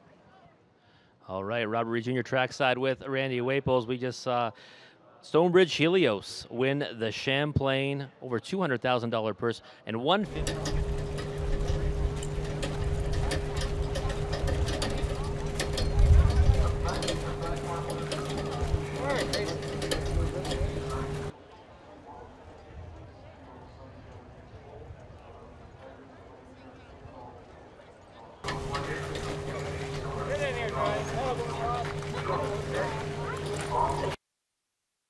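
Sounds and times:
indistinct background voices: 0:10.2 - 0:21.3, 0:28.4 - 0:34.2
steady low hum: 0:10.2 - 0:21.3, 0:28.4 - 0:34.2.

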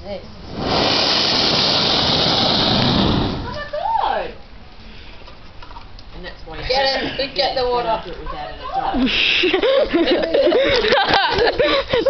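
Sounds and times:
sparkler bomb burning rush: 0:00.4 - 0:04.0.

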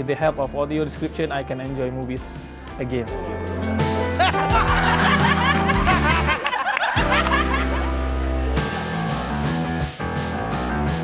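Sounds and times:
background music: 0:00.0 - 0:11.0
audience laughing: 0:04.2 - 0:08.1.

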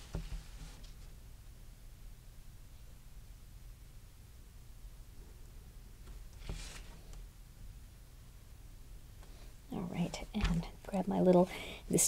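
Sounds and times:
woman speaking quietly: 0:09.7 - 0:12.0.

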